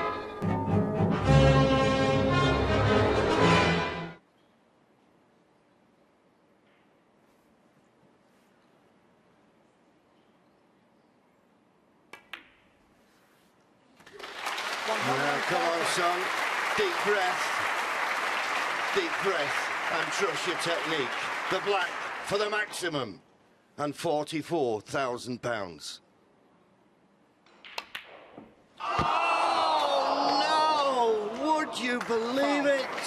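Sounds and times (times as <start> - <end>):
snooker balls clicking: 27.5 - 28.6
crowd groaning: 28.8 - 33.0.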